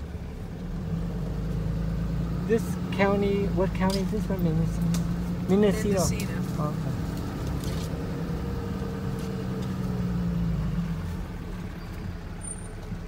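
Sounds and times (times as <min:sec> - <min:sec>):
vehicle engine hum: 0:00.0 - 0:13.0.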